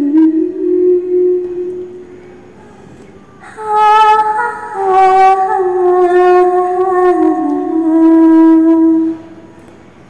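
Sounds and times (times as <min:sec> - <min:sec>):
woman humming a held note: 0:00.0 - 0:02.0, 0:02.6 - 0:09.6.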